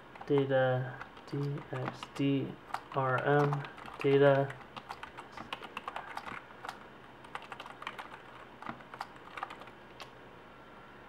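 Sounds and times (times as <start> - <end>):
computer keyboard typing: 0.1 - 10.1.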